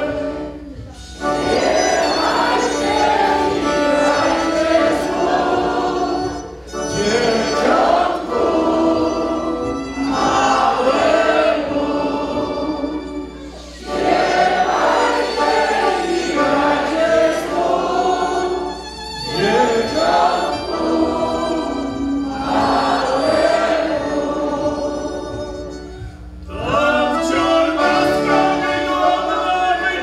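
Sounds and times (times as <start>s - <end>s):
group singing a carol: 0.0s - 25.8s, 26.5s - 30.0s.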